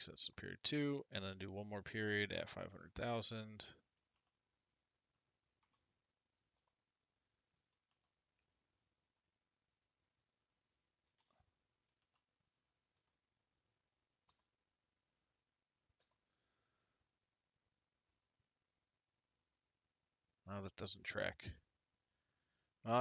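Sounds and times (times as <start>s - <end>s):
faint keyboard typing clicks: 3.8s - 16.4s.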